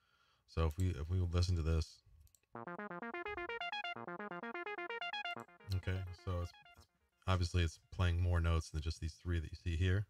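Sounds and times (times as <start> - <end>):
synthesizer playing fast arpeggio: 2.6 - 6.8.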